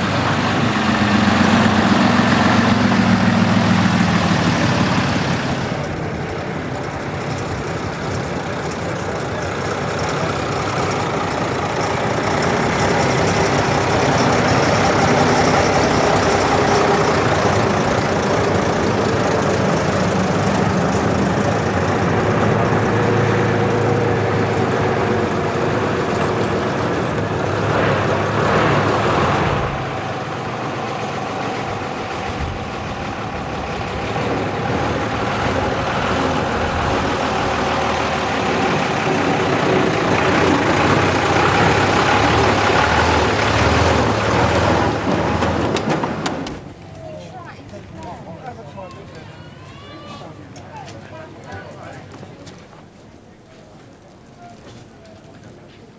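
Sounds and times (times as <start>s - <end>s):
diesel lorry engines running: 0.0s - 55.9s.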